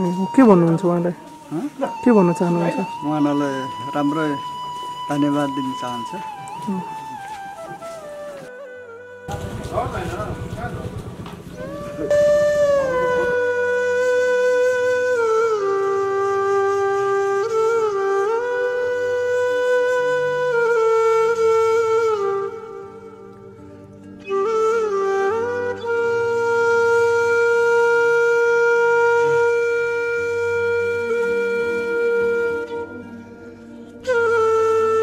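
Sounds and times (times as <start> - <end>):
flute holding a long note: 0.0 - 35.0.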